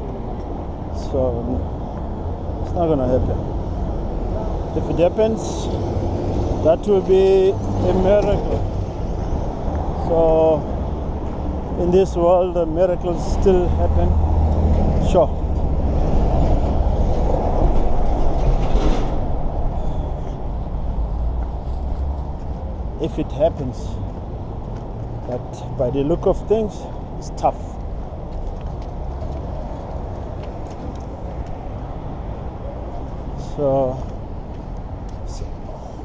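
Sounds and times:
distant road traffic: 0.0 - 36.0
low city street rumble: 0.0 - 36.0.

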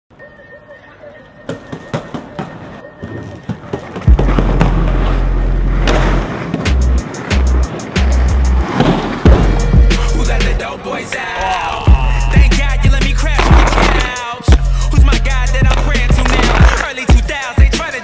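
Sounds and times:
inline skate wheels rolling: 1.4 - 11.8, 12.4 - 18.0
music with heavy bass: 4.1 - 10.6, 11.9 - 18.0.

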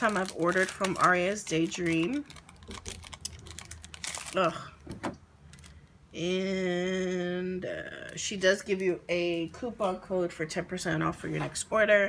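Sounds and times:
plastic sleeve crinkling: 0.0 - 5.8.

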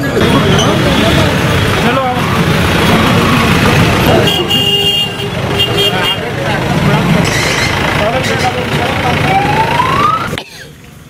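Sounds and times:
street chatter: 0.0 - 11.0
traffic noise: 0.0 - 11.0
vehicle horn honks: 4.1 - 6.3.

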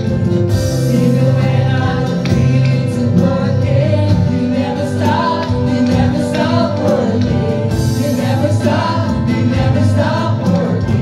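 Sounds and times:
acoustic guitar: 0.0 - 11.0
electric bass: 0.0 - 11.0
keyboard: 0.0 - 11.0
man and woman singing: 0.6 - 11.0.

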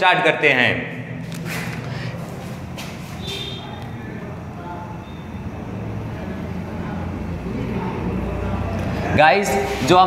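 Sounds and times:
low rumbling background noise: 0.0 - 10.0
marker squeaking on whiteboard: 2.4 - 4.0.

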